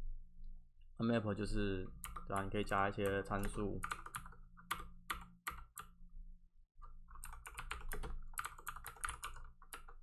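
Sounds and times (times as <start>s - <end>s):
computer keyboard typing: 2.0s - 5.9s, 6.8s - 10.0s.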